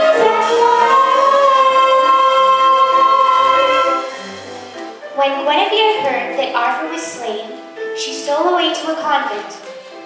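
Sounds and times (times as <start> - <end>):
choir holding a long note: 0.0 - 4.5
orchestral accompaniment: 0.0 - 10.0.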